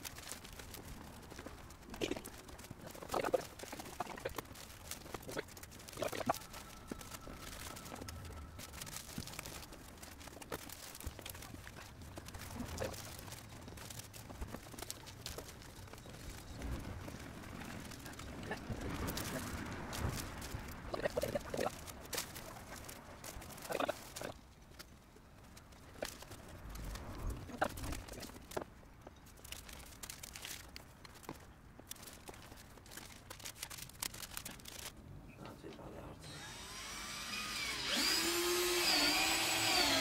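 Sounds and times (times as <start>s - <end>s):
foil insulation rustling: 0.0s - 35.0s.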